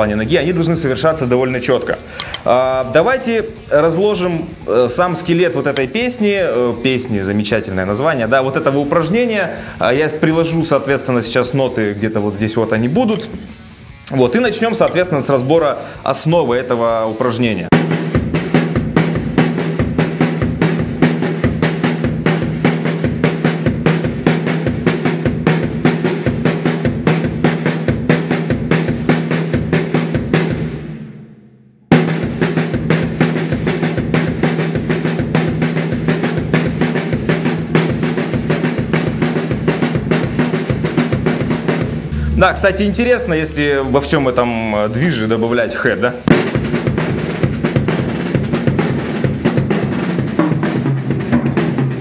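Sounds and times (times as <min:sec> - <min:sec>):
drum kit groove: 0:00.0 - 0:15.8, 0:17.7 - 0:31.2, 0:31.9 - 0:52.0
bass drum kicks: 0:41.9 - 0:44.4, 0:46.3 - 0:47.0.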